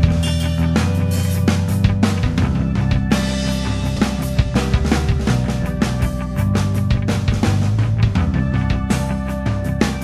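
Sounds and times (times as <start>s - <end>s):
drums striking: 0.0s - 10.0s
rock music with electric guitars: 0.0s - 10.0s.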